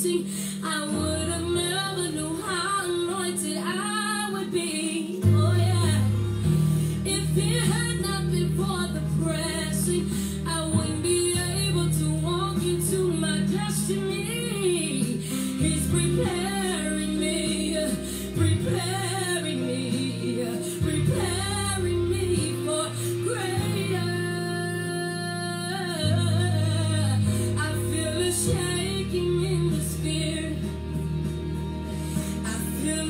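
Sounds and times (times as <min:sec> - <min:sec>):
woman singing gospel song: 0:00.0 - 0:31.2, 0:32.3 - 0:33.0
sustained bass notes: 0:05.2 - 0:33.0.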